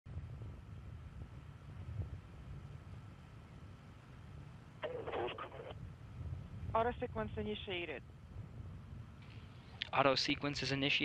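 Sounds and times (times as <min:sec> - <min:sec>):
faint steady hum tone: 0:00.1 - 0:11.0
low rumble of wind: 0:00.1 - 0:11.0
muffled radio chatter: 0:04.8 - 0:05.8.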